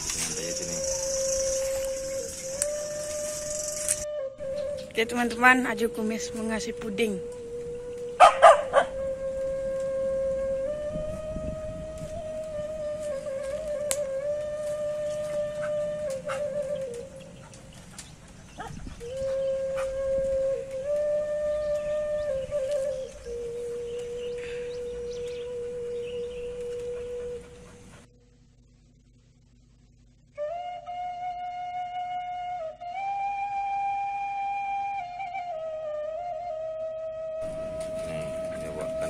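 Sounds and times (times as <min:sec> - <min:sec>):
flute melody: 0:00.0 - 0:28.3, 0:30.3 - 0:39.0
faint scattered clicks: 0:16.1 - 0:19.3, 0:26.4 - 0:27.6.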